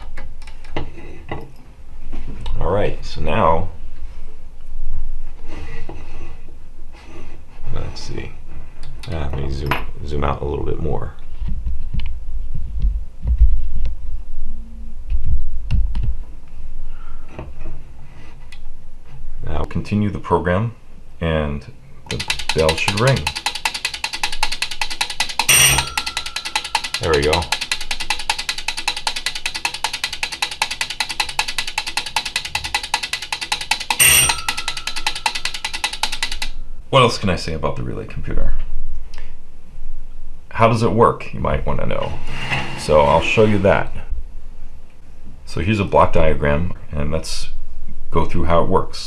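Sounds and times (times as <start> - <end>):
relays clicking rapidly: 22.1 - 36.6
old-style bell ringing: 22.2 - 24.3, 25.0 - 36.5.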